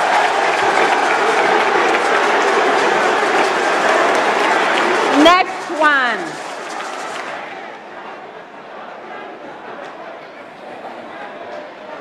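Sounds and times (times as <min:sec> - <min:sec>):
audience cheering and applauding: 0:00.0 - 0:07.8.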